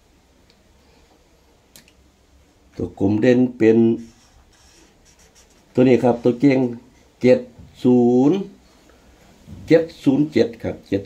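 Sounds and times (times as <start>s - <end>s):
marker scratching on paper: 3.9s - 6.7s.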